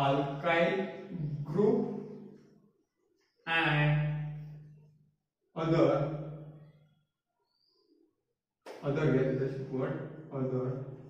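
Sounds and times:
man lecturing: 0.0s - 2.1s, 5.6s - 6.0s, 8.8s - 10.9s.

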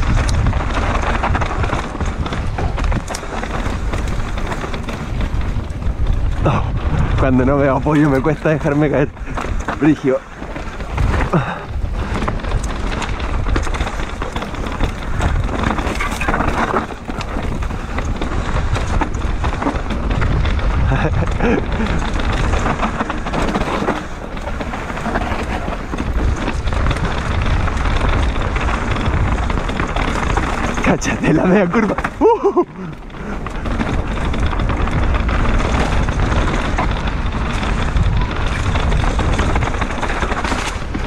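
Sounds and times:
bike clattering over bumps: 0.0s - 41.0s
bike tyres rolling over dirt: 0.0s - 41.0s
wind rumbling on microphone: 0.0s - 41.0s.

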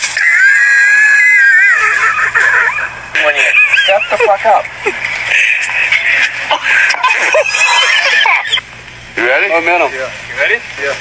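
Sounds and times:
person screaming: 0.2s - 2.9s.

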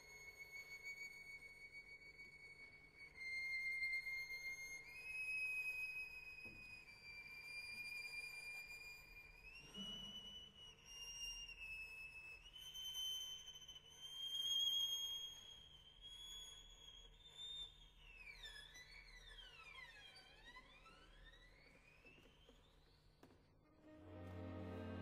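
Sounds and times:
high sustained violin notes: 23.8s - 25.0s
string glissandi: 23.8s - 25.0s.

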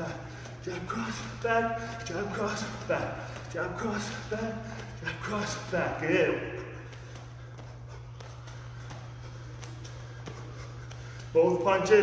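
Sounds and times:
bare feet tapping on gym mat: 0.0s - 12.0s
low room hum: 0.0s - 12.0s.

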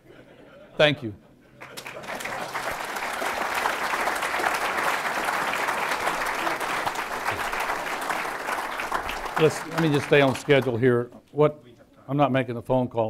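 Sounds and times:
audience applauding: 1.6s - 11.0s.

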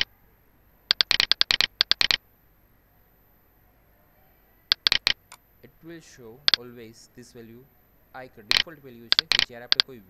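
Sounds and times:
computer mouse clicks: 0.9s - 2.2s, 4.7s - 5.4s, 6.4s - 6.6s, 8.5s - 10.0s.

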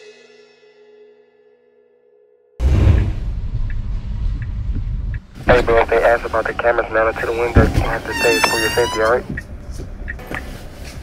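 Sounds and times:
car engine rumble inside cabin: 3.0s - 11.0s.

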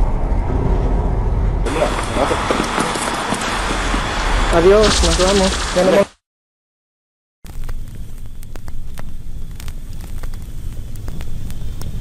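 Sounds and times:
low rumbling noise: 0.0s - 6.2s
sharp crackles: 1.7s - 6.2s, 7.4s - 12.0s.

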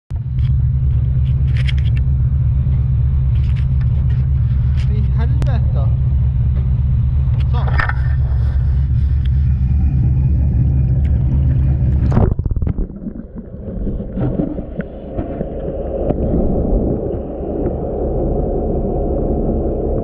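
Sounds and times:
boat engine rumbling: 0.1s - 20.0s.

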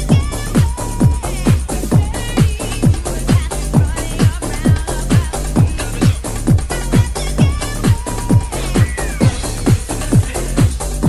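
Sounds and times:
house dance music: 0.0s - 11.0s
kick drum: 0.0s - 11.0s.

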